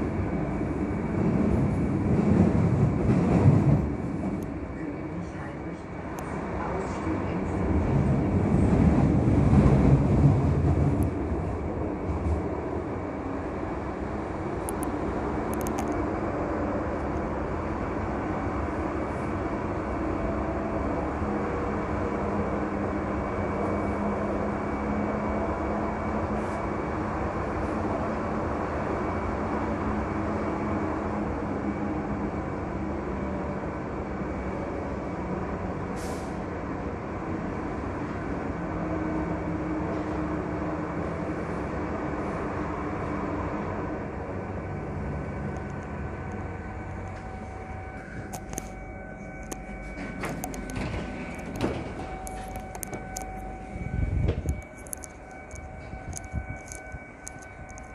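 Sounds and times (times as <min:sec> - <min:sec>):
train rolling rumble in tunnel: 0:00.0 - 0:57.9.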